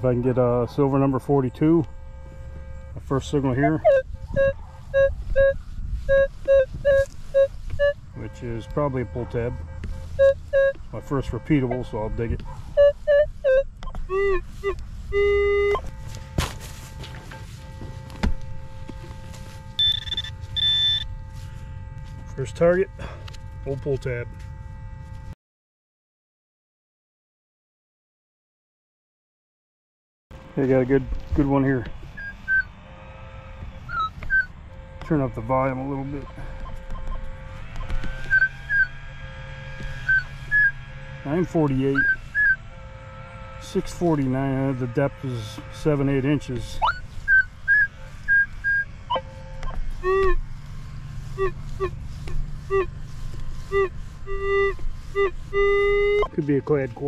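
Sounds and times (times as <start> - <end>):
metal detector beeps: 0.1 - 24.5, 30.6 - 32.7, 33.8 - 38.9, 40.0 - 42.6, 43.7 - 50.4, 51.4 - 52.0, 53.7 - 56.9.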